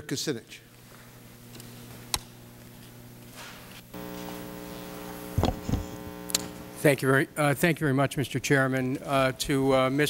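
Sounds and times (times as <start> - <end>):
electrical mains hum: 0.1 - 10.0
man speaking: 6.8 - 10.0.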